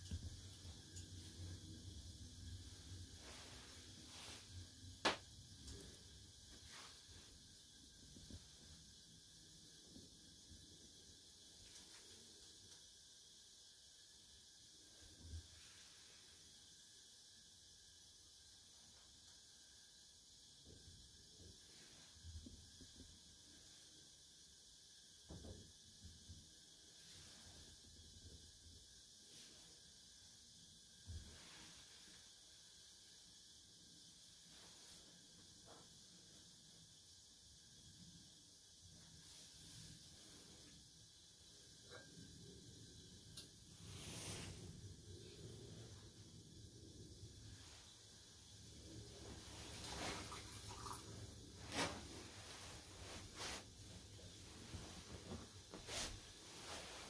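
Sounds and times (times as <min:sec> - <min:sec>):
faint hiss: 0:00.0 - 0:57.0.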